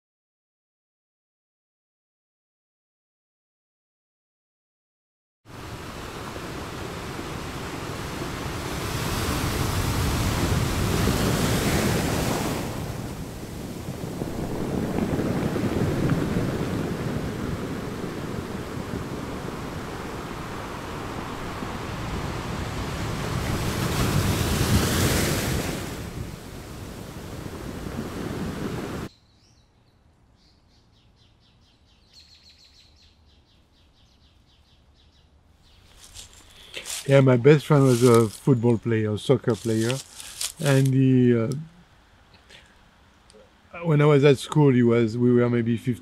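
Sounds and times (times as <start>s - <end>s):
small waves washing onto beach: 5.5s - 29.1s, 36.0s - 42.2s.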